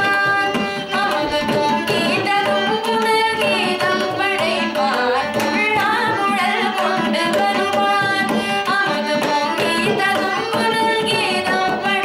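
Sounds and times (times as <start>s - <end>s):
violin: 0.0s - 12.0s.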